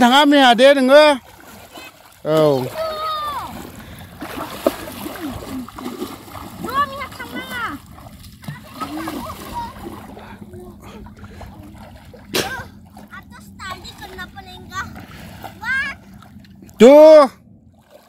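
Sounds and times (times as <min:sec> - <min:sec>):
water splashing and sloshing: 0:00.0 - 0:18.0.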